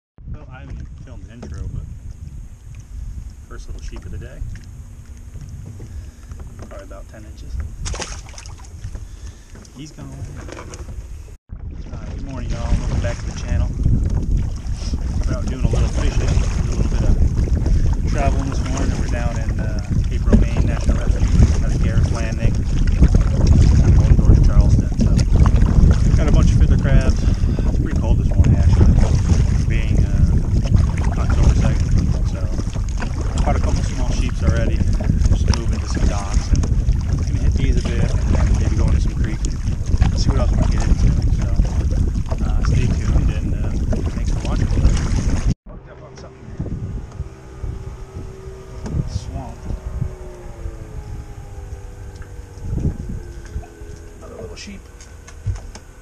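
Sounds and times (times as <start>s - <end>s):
strong wind on microphone: 0.2s - 56.0s.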